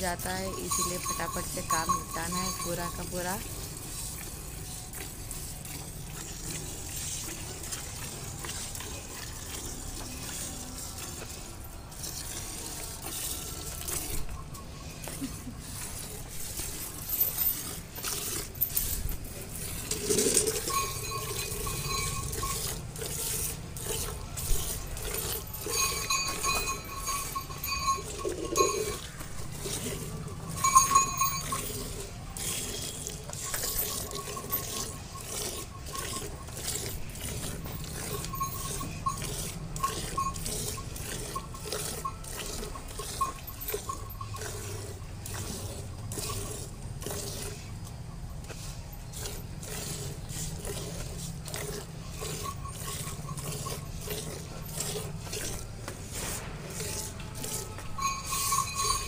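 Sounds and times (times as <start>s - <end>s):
milk squirting into steel bucket: 0.6s - 47.7s, 48.5s - 59.0s.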